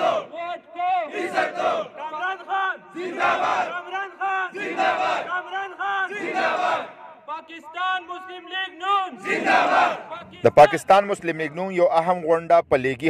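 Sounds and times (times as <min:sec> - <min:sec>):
crowd of men chanting: 0:00.0 - 0:10.6.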